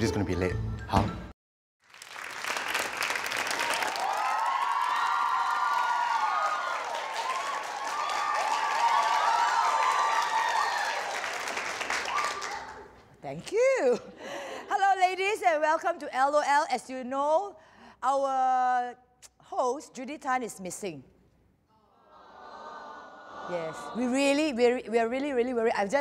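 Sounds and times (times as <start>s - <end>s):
audience applauding: 1.8s - 12.9s
people cheering: 2.5s - 12.9s, 22.1s - 24.0s.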